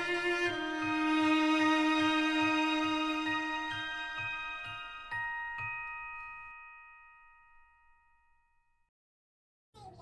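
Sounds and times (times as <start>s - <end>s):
bell-like chime ringing: 0.0s - 8.9s.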